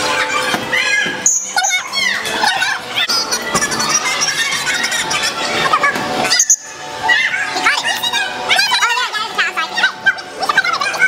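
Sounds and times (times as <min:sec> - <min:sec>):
background music: 0:00.0 - 0:11.0
children shouting: 0:00.0 - 0:11.0.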